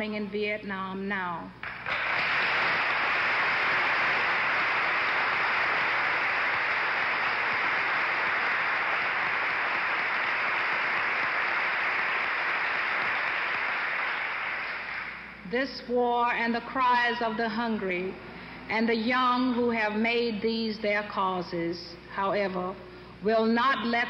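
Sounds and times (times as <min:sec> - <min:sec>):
large audience applauding: 0:01.6 - 0:15.3.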